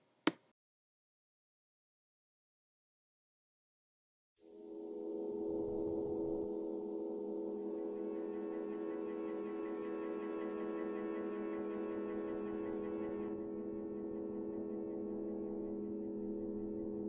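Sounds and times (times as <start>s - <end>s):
ambient drone of held tones: 4.4s - 17.0s.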